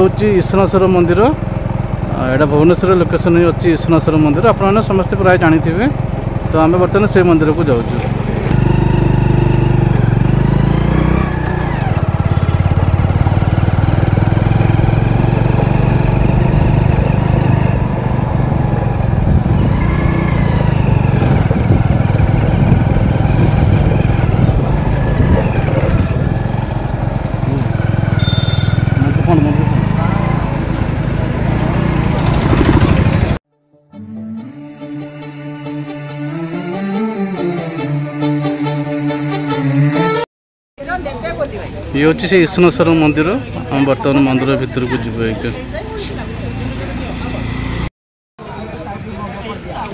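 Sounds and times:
motorcycle engine running: 0.0s - 33.4s.

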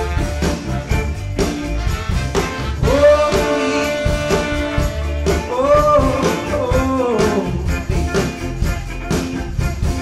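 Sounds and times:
live rock band playing: 0.0s - 10.0s
long held lead melody: 0.0s - 10.0s.

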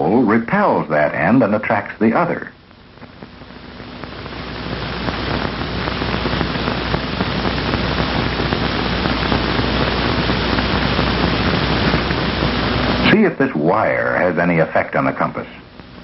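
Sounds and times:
film soundtrack static hiss: 0.0s - 16.0s.

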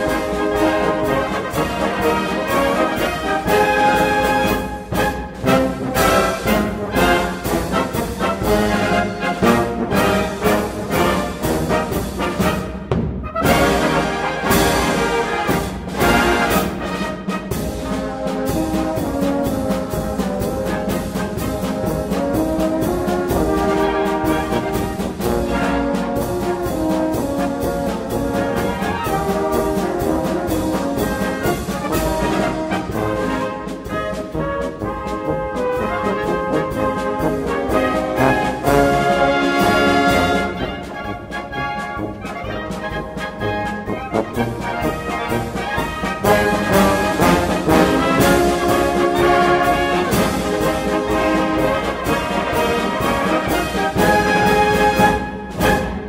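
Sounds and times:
brass band playing polka: 0.0s - 56.0s.

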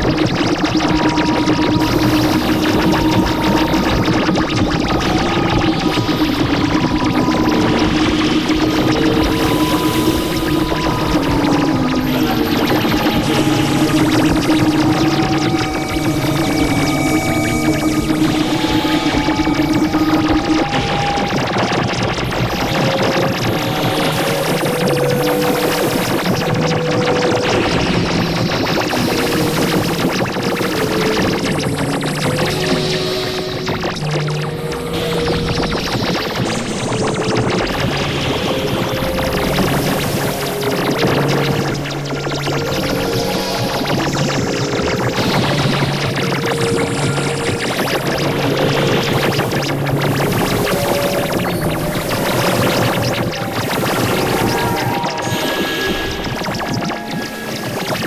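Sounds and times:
electronic drone music: 0.0s - 58.0s.

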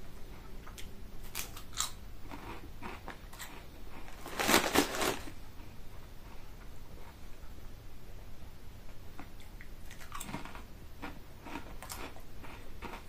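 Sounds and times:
potato crisp crunching: 0.7s - 5.4s, 9.9s - 13.0s.

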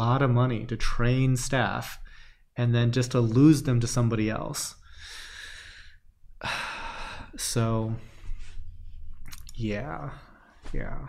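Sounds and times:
man breathing: 2.0s - 2.5s, 4.8s - 7.4s, 8.0s - 9.2s.

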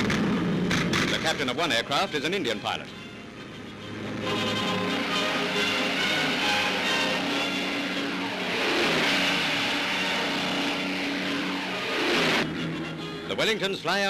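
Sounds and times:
aircraft engines droning overhead: 0.0s - 14.0s
music: 1.5s - 14.0s.

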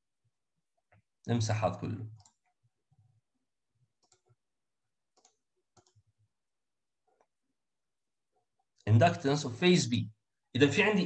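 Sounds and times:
computer mouse clicks: 2.1s - 2.6s, 4.0s - 4.4s, 5.1s - 6.0s.

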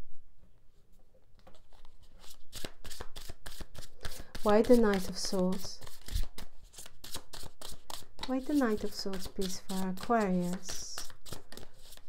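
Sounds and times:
cards being shuffled: 1.4s - 12.0s.

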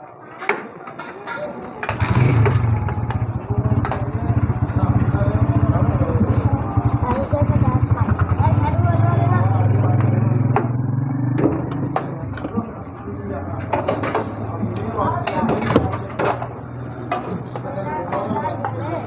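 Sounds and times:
voices talking: 0.0s - 19.0s
engine running: 1.9s - 17.6s.

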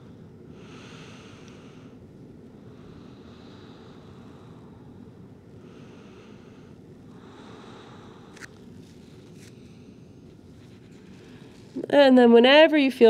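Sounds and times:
low room tone hum: 0.0s - 13.0s
soft breaths through nose: 0.1s - 11.8s.

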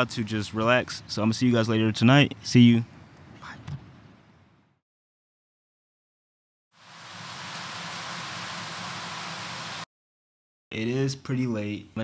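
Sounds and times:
shower running: 6.9s - 9.8s.

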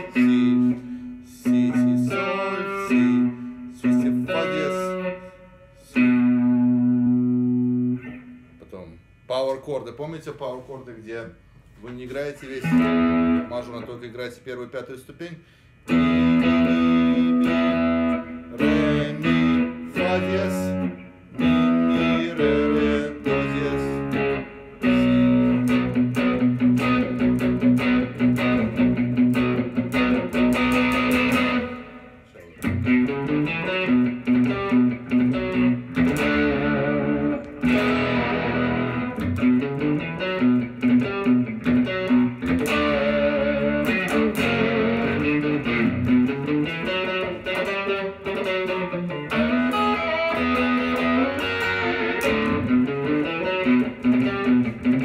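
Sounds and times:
electric guitar playing: 0.0s - 9.2s, 12.5s - 14.2s, 15.7s - 55.0s.

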